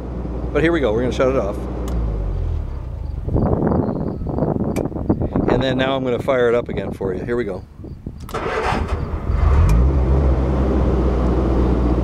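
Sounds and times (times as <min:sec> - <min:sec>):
sharp click: 0:04.7 - 0:04.9.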